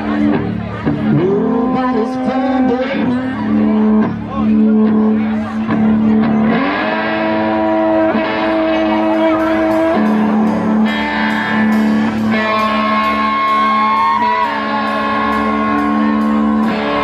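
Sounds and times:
hollow-body guitar: 0:00.0 - 0:17.0
upright bass: 0:00.0 - 0:17.0.

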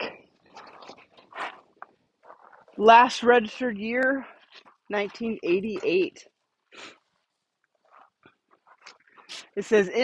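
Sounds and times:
footsteps on gravel: 0:00.0 - 0:06.2.

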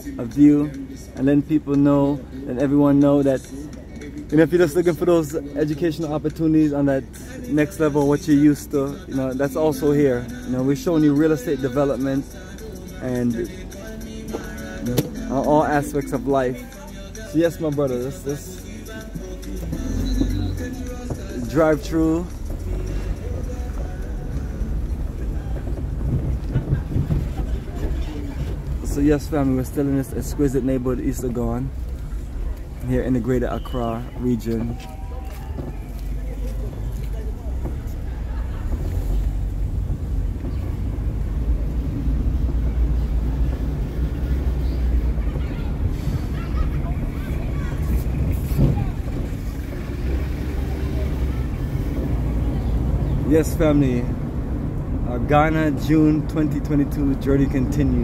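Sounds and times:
car driving slowly rumble: 0:00.0 - 0:58.0
faint voices: 0:00.0 - 0:58.0
street noise: 0:00.0 - 0:58.0.

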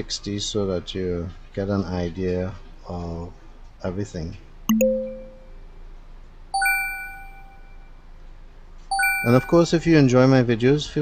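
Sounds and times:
electronic chime ding: 0:04.7 - 0:05.6, 0:06.6 - 0:07.7, 0:08.9 - 0:09.9.

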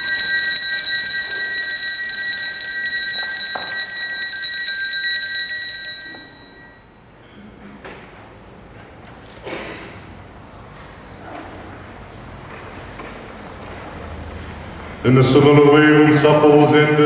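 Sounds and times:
altar bells ringing: 0:00.0 - 0:07.1.

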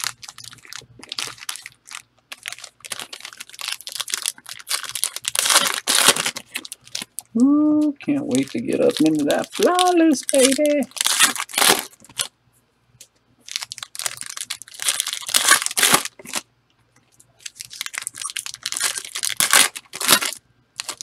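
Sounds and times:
foil wrapper tearing and crinkling: 0:00.0 - 0:12.3, 0:13.4 - 0:16.5, 0:17.4 - 0:21.0.

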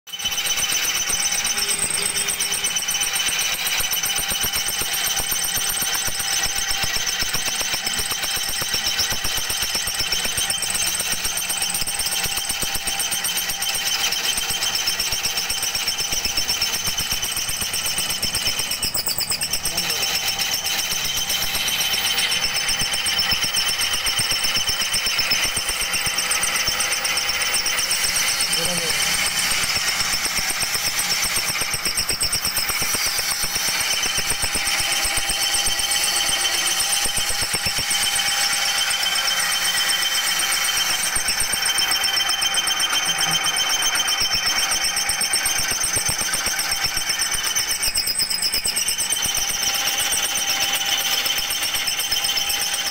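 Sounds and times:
machine rattling with high whine: 0:00.1 - 0:52.9.

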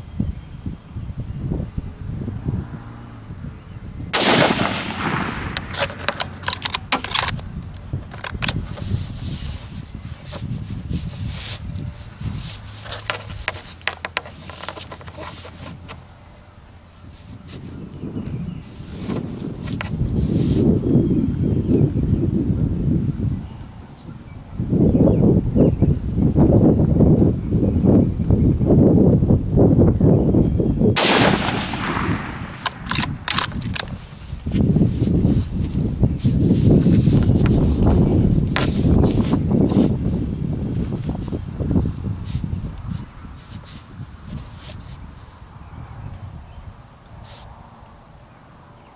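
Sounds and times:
wind buffeting microphone: 0:00.0 - 0:48.9
rifle shot: 0:04.1 - 0:06.3, 0:31.0 - 0:33.5
rifle bolt clicks: 0:04.2 - 0:08.6, 0:31.0 - 0:34.0.

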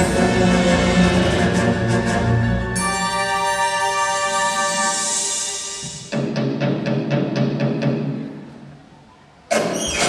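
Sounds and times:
drum-pulsed music: 0:00.0 - 0:02.9, 0:05.0 - 0:08.4.

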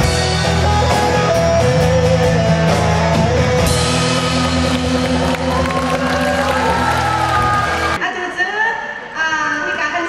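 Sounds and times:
bass line: 0:00.0 - 0:08.0
guitars playing chords: 0:00.0 - 0:08.0.

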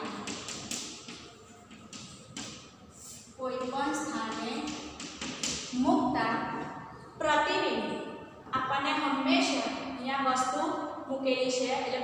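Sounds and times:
chalk tapping on blackboard: 0:00.0 - 0:05.8
woman speaking: 0:03.4 - 0:04.8, 0:05.7 - 0:12.0.

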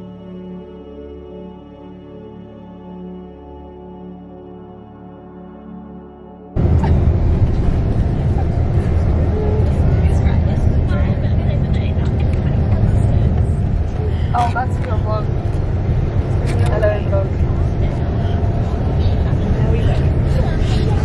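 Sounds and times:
bus engine rumble: 0:06.6 - 0:21.0.

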